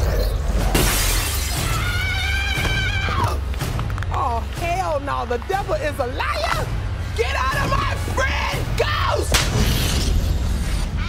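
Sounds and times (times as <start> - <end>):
low trailer music: 0.0 - 11.0.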